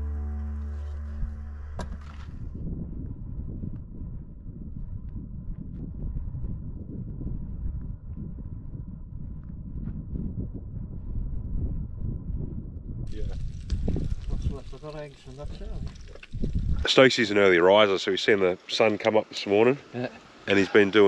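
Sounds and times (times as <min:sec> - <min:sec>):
wind buffeting microphone: 0:01.2 - 0:17.1.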